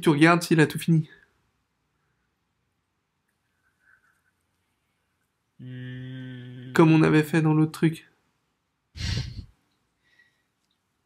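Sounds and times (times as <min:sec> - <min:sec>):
person exhaling: 0:09.0 - 0:09.5.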